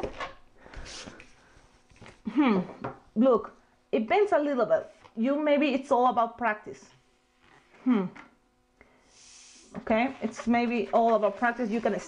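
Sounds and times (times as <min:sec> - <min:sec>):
puff of air: 0:08.8 - 0:09.8.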